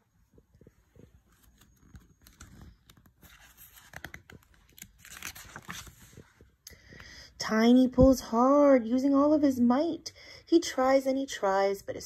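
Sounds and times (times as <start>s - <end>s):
paper pages rustling and turning: 0.6s - 6.6s.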